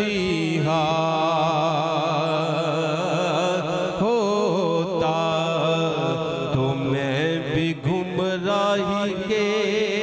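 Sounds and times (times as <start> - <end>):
man singing ornamented notes: 0.0 - 10.0.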